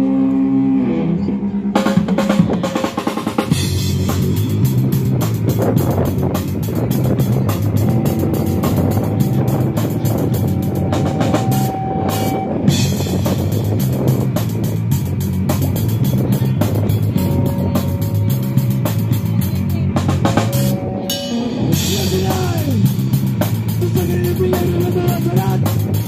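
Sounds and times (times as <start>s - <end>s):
hardcore punk band playing: 1.4s - 26.0s.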